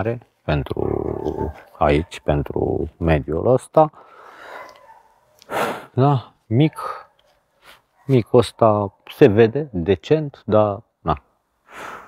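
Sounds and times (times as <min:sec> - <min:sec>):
intake of breath: 0:04.0 - 0:04.8, 0:11.6 - 0:12.0
person exhaling: 0:11.7 - 0:12.0.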